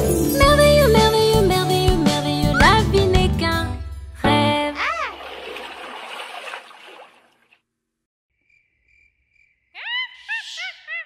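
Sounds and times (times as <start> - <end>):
wash of sound: 5.0 - 7.5
faint cricket chirping: 8.4 - 10.0.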